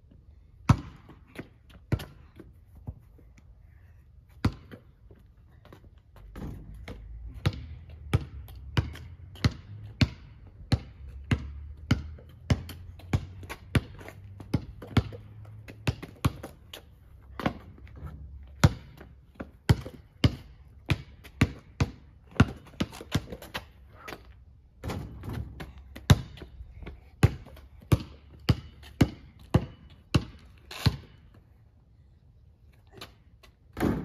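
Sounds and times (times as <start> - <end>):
basketball bouncing on pavement: 0.6 - 3.1, 4.3 - 31.4, 32.9 - 34.0.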